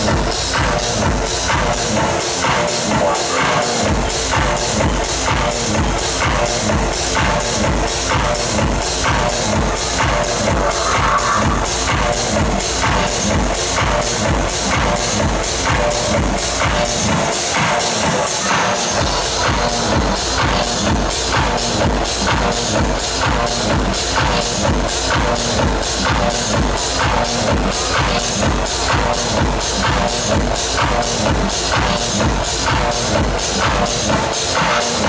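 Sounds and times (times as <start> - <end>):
kick drum: 0.0 - 1.7, 3.9 - 17.3, 19.0 - 34.3
techno over club speakers: 0.0 - 35.0.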